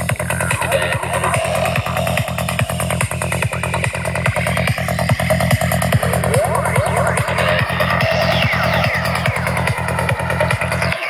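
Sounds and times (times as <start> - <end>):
psychedelic trance music: 0.0 - 11.0.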